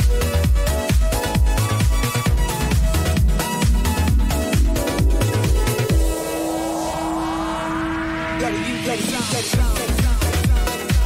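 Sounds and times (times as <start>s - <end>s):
held low note: 1.4s - 7.7s
rising synth sweep: 1.4s - 8.3s.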